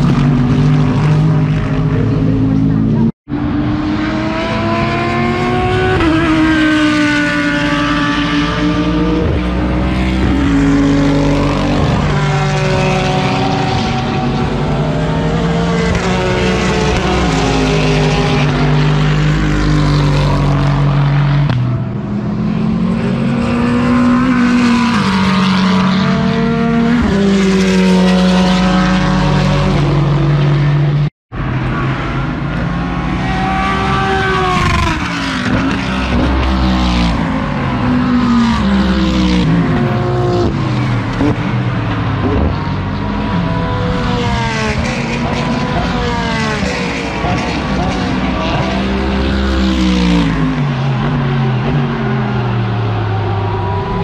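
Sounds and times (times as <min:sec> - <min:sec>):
race cars passing at speed: 0:00.0 - 0:54.0.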